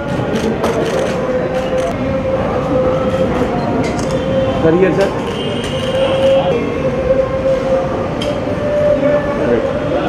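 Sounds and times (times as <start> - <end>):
dense background murmur: 0.0 - 10.0
loud steady held tone: 1.4 - 10.0.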